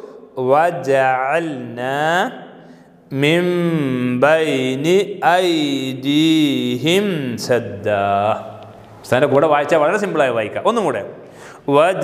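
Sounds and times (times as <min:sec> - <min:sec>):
man chanting melodic recitation: 0:00.0 - 0:11.0.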